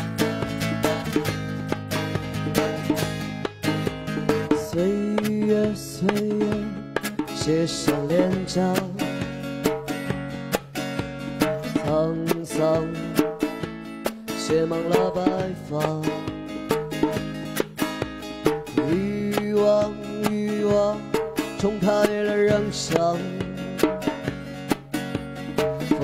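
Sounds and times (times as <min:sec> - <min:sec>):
acoustic guitar strummed: 0:00.0 - 0:26.0
hand drum beat: 0:00.0 - 0:26.0
man singing: 0:04.5 - 0:09.6, 0:11.6 - 0:13.6, 0:14.3 - 0:16.6, 0:18.7 - 0:24.1, 0:25.7 - 0:26.0.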